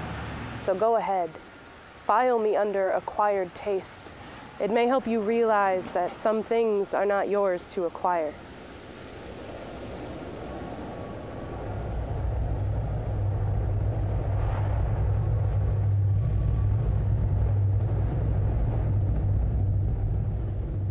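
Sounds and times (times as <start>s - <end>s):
low rumble: 8.4s - 20.9s.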